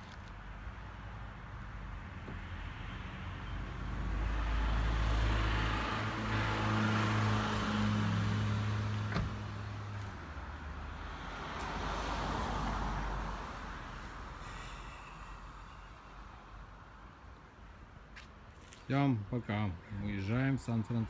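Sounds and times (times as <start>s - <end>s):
car door shutting: 9.0s - 9.4s.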